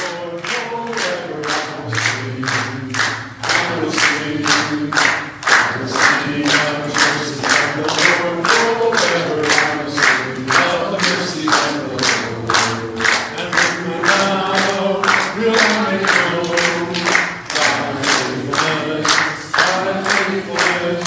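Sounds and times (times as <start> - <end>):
choir singing: 0.0 - 21.0
steady clapping beat: 0.0 - 21.0.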